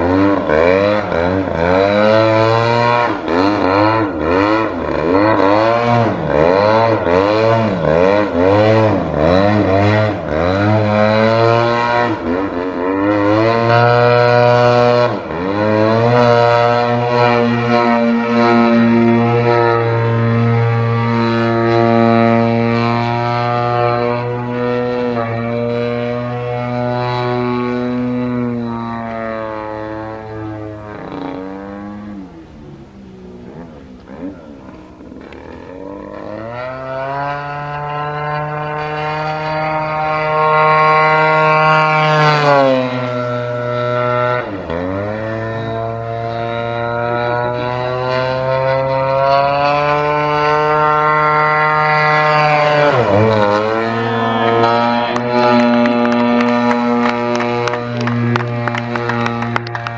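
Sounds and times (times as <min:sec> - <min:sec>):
model plane engine and propeller: 0:00.0 - 0:59.9.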